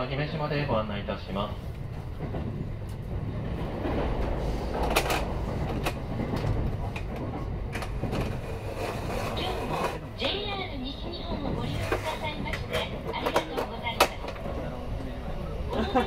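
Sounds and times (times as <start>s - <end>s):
train wheels rumbling on rails: 0.0s - 16.0s.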